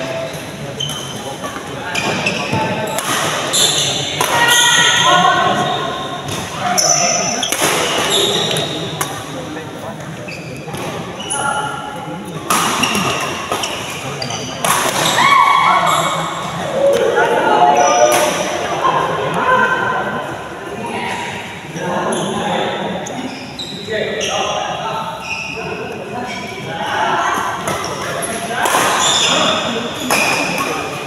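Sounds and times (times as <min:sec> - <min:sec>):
racket hitting shuttlecock: 0:14.6 - 0:15.2.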